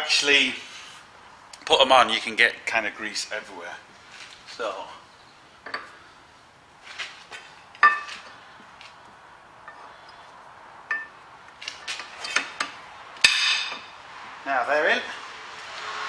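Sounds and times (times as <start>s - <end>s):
metal clinks and taps: 7.8s - 8.3s, 10.9s - 11.2s.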